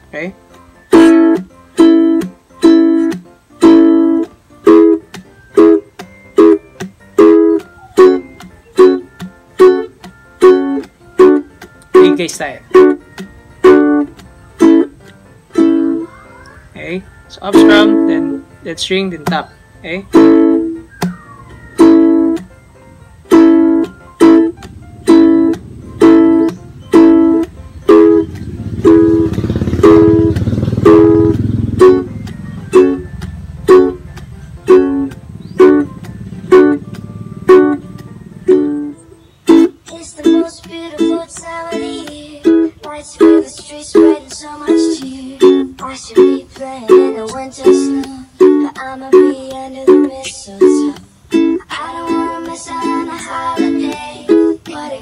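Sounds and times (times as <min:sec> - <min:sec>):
ukulele strumming: 0:00.0 - 0:55.0
percussive tap on strings: 0:01.0 - 0:12.1, 0:12.8 - 0:15.2, 0:19.2 - 0:19.5, 0:20.2 - 0:21.2, 0:22.3 - 0:22.6, 0:23.8 - 0:34.4.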